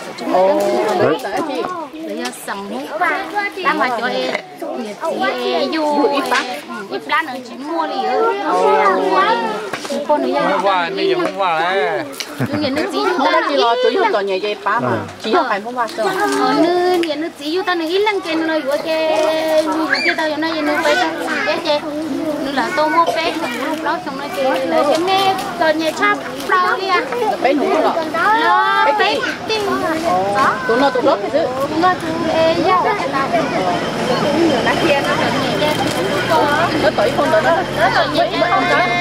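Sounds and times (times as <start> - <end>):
woman talking: 0.0 - 10.6, 12.4 - 39.0
children's voices: 0.0 - 39.0.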